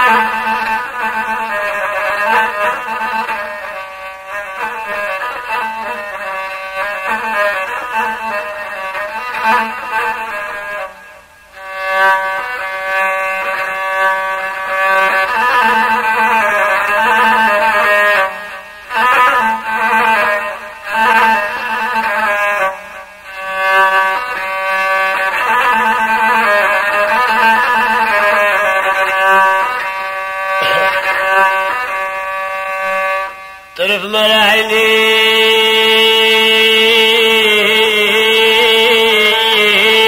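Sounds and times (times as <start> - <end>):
bowed fiddle melody: 0.0 - 40.0.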